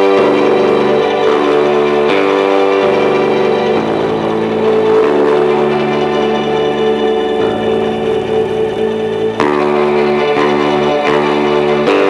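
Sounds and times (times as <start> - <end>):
electric bass long held notes: 0.0 - 12.0.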